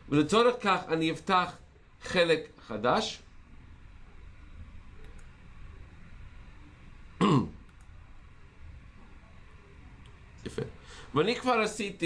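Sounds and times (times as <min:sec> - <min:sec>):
man clearing his throat: 0:07.2 - 0:07.6.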